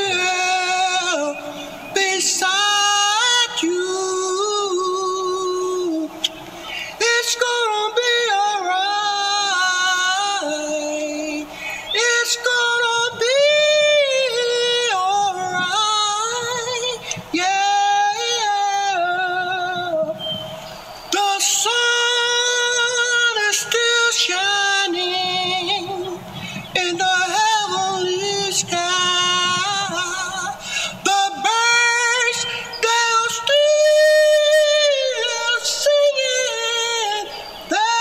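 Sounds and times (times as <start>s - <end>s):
person singing long notes: 0.0s - 38.0s.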